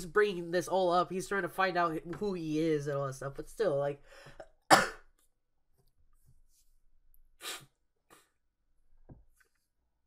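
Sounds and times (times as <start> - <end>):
man coughing: 4.7 - 5.1.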